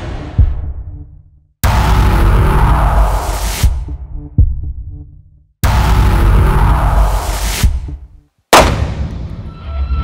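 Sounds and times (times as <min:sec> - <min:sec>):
music: 0:00.0 - 0:10.0
handgun shot: 0:08.5 - 0:09.2.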